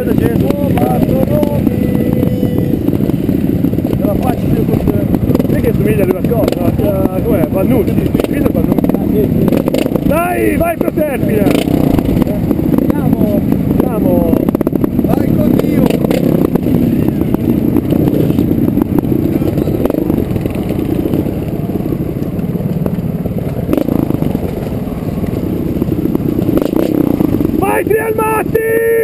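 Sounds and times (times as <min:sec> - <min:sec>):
motorcycle engine at low revs: 0:00.0 - 0:29.0
motorcycle clattering over rocks: 0:02.8 - 0:27.6.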